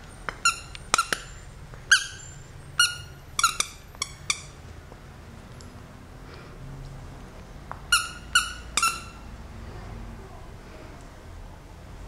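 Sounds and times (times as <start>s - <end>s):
dog toy squeaking: 0.3s - 4.6s, 7.8s - 9.4s.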